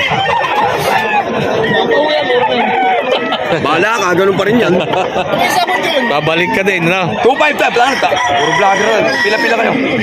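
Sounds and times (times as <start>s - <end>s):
crowd chatter: 0.0s - 10.0s
rooster crowing: 7.3s - 9.8s.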